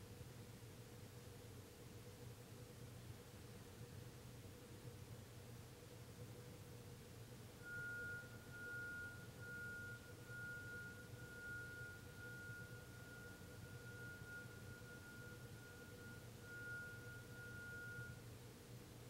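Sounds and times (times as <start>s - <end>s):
low room hum: 0.0s - 19.0s
high-pitched pure tone: 7.6s - 18.2s.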